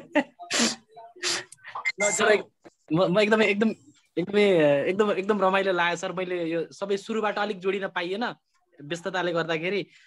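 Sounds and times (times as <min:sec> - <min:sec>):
speech on video call: 0:00.0 - 0:10.0.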